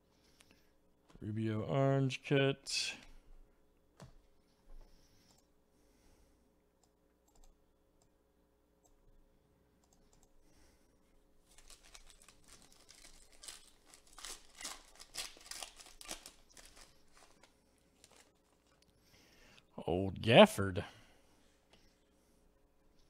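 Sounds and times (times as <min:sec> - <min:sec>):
wrapper tearing and crinkling: 0:11.5 - 0:18.8.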